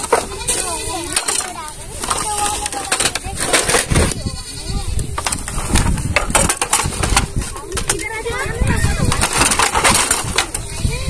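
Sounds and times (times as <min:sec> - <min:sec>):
bamboo poles knocking and clattering: 0:00.0 - 0:04.2, 0:05.1 - 0:08.1, 0:09.0 - 0:10.7.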